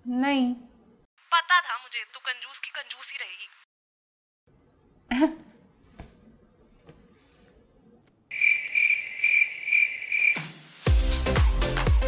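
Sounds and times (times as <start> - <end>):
crickets chirping: 8.3 - 10.4
dance music: 10.9 - 12.0.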